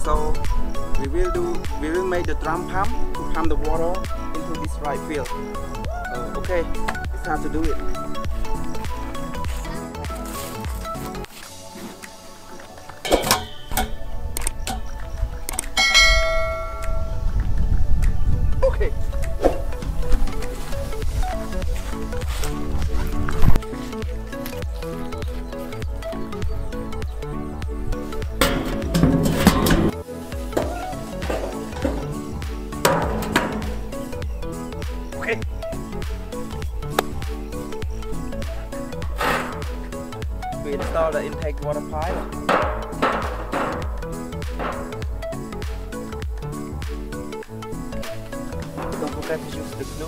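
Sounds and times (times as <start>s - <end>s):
background music: 0.0s - 50.0s
metal stand clanging on concrete: 13.0s - 15.0s, 15.6s - 17.1s, 28.3s - 30.0s, 30.6s - 34.1s, 39.0s - 45.5s, 48.6s - 50.0s.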